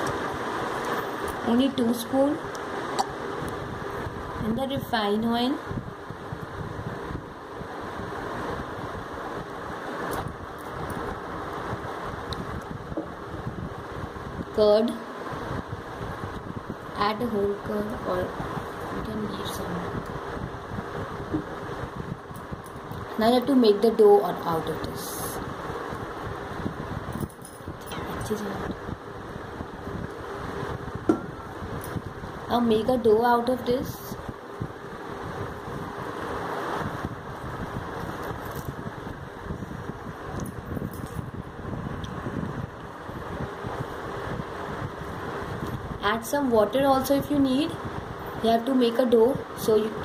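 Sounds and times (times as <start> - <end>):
steady background whir: 0.0 - 50.0
steady rushing noise: 0.0 - 50.0.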